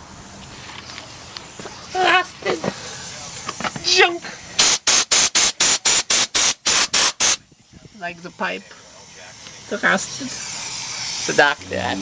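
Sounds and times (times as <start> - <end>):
spray nozzle hissing squirts: 4.6 - 7.4, 9.2 - 11.8.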